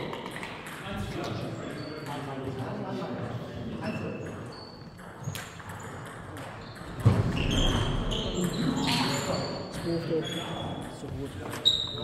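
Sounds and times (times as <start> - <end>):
table tennis balls clicking: 0.0 - 0.9.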